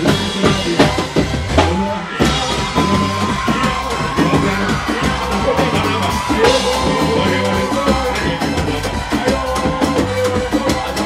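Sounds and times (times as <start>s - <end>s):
drum-driven band music: 0.0s - 11.0s.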